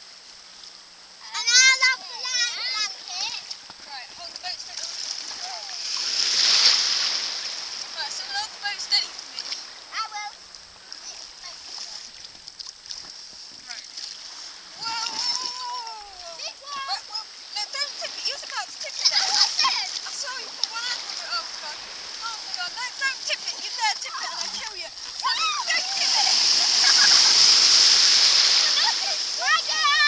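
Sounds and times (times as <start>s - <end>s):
children calling out: 1.2s - 3.6s, 14.8s - 30.0s
water splashing: 1.4s - 30.0s.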